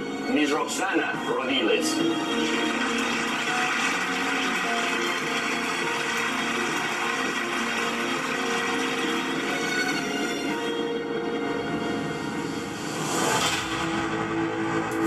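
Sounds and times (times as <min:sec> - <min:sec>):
crowd applauding on television: 0:01.8 - 0:10.6.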